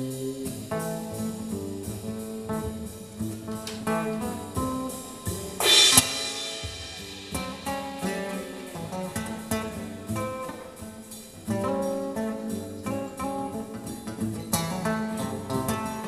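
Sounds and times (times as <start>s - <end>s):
drums: 0.0s - 16.0s
guitars picking melodic lines: 0.0s - 16.0s
cymbal crash: 1.1s - 12.1s.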